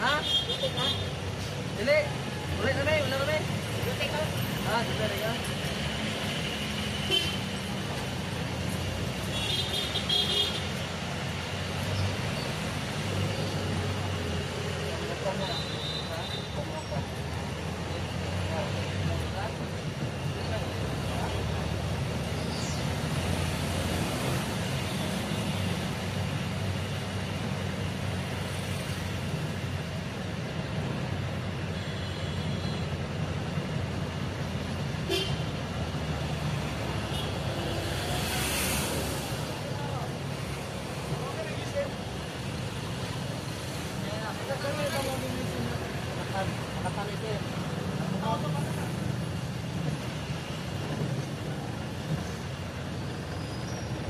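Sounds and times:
vehicle engine and road noise: 0.0s - 54.0s.

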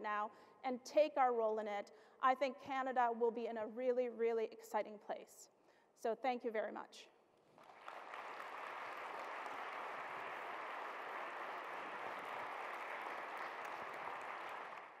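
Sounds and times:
audience applause: 7.6s - 15.0s.

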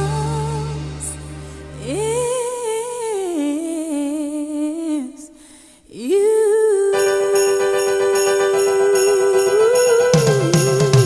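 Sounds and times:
solo voice singing with vibrato: 0.0s - 11.0s.

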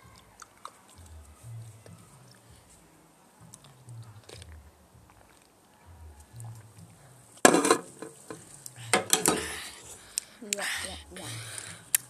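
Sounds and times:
drink can crackling and knocking: 7.4s - 9.6s.

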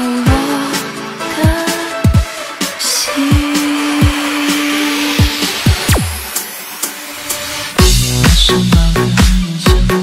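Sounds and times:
hissing noise sweep: 2.3s - 8.3s
deep kick drums: 7.8s - 10.0s.

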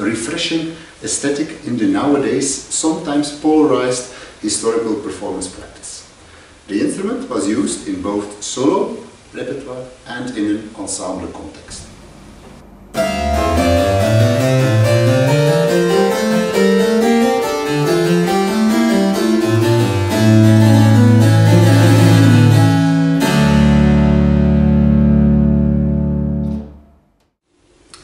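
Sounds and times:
claviorganum keyboard passage: 12.9s - 24.4s.

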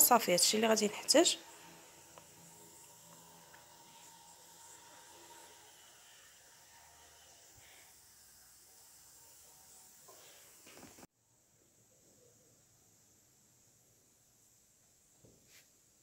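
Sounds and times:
food sizzling in frying pan: 0.0s - 11.1s.

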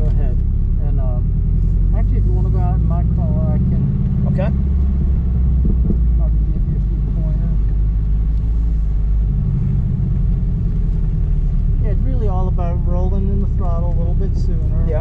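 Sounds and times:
car engine low drone: 0.0s - 15.0s
person speaking: 11.8s - 15.0s.

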